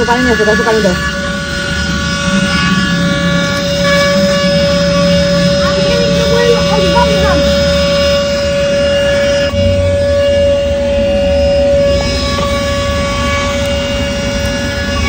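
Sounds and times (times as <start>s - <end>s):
handheld vacuum cleaner whine: 0.0s - 15.0s.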